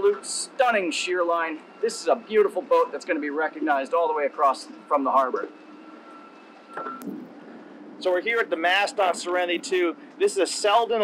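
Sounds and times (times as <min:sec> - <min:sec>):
faint steady tone: 0:00.0 - 0:11.0
outdoor background noise: 0:00.0 - 0:11.0.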